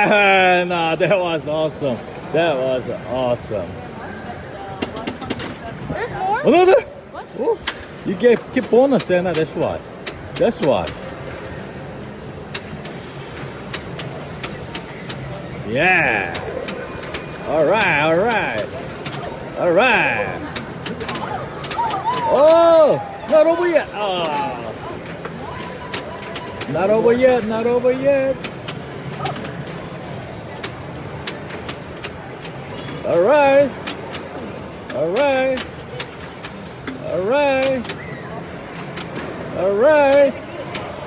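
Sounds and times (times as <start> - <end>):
pinball clicks and knocks: 4.7 - 5.8, 7.6 - 41.0.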